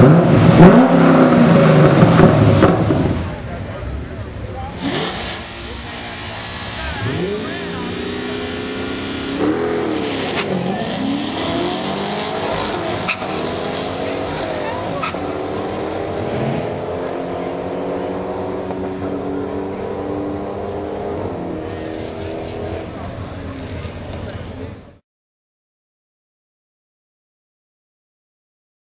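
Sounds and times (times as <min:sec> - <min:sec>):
car engine at full throttle: 0:00.0 - 0:25.0.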